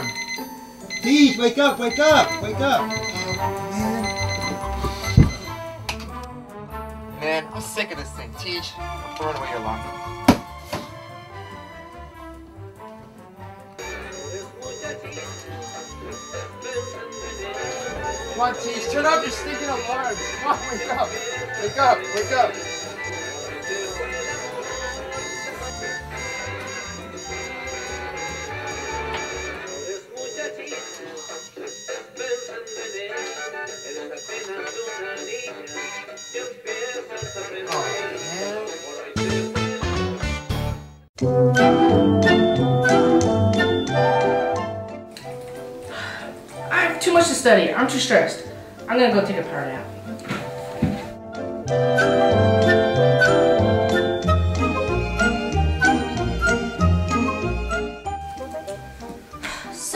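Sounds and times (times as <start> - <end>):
alarm clock ringing: 0.0 - 5.6, 13.8 - 40.0
background music: 0.0 - 59.9
thump: 10.3 - 10.9.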